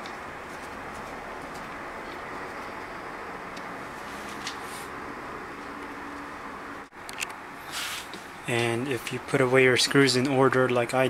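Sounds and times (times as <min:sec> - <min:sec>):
faint hum: 0:00.0 - 0:11.0
short hiss: 0:07.6 - 0:08.2.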